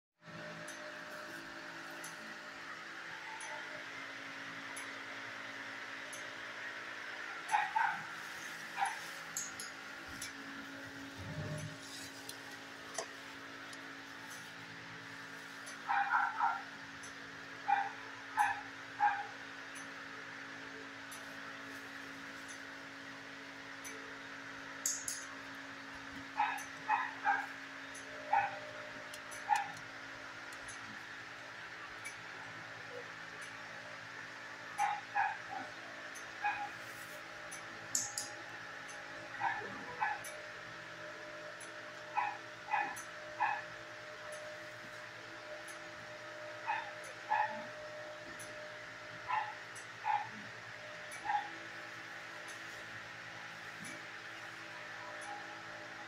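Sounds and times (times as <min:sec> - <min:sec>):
steady low hum: 0:00.2 - 0:56.0
dog yipping: 0:07.5 - 0:08.1, 0:15.9 - 0:16.6, 0:26.4 - 0:27.5, 0:28.3 - 0:28.6, 0:42.2 - 0:43.6, 0:46.7 - 0:47.7, 0:49.3 - 0:50.4.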